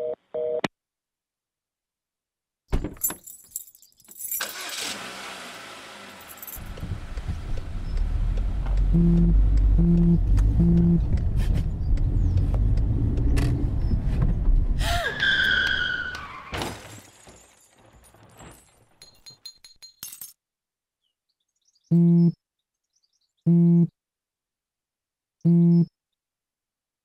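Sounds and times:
car keys jangling in ignition: 3.0 - 5.0, 6.2 - 6.8, 19.0 - 20.4
car engine rumbling: 4.2 - 14.9
tyres screeching: 14.8 - 16.6
car crash: 15.5 - 19.0.

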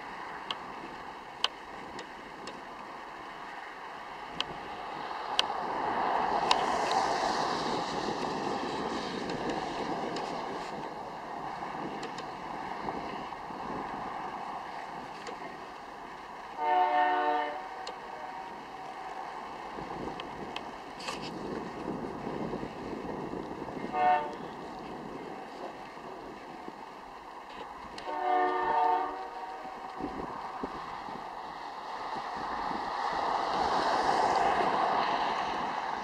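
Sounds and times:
distant freight train passing: 0.0 - 36.0
train air horn blast: 16.5 - 18.7, 23.8 - 24.6, 28.0 - 30.1.

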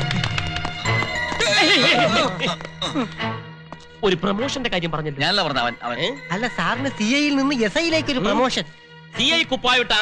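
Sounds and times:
film music with percussive beat: 0.0 - 8.5.

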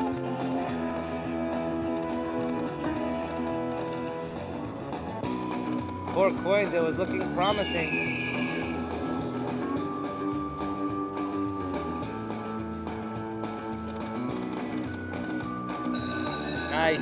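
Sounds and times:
slot machine game music: 5.4 - 8.9, 15.0 - 17.0.

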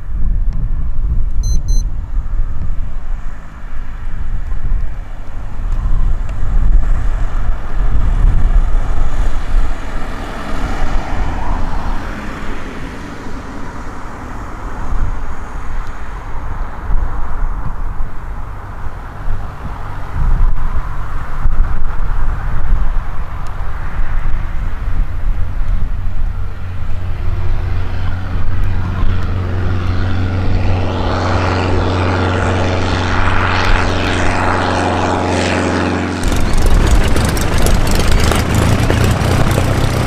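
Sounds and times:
propeller aircraft engine drone: 0.0 - 40.0
wind rumble on microphone: 0.0 - 40.0.

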